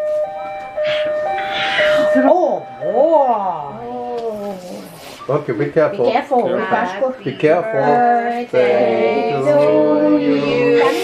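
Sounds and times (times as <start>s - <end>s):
electronic two-tone siren: 0.0s - 4.6s.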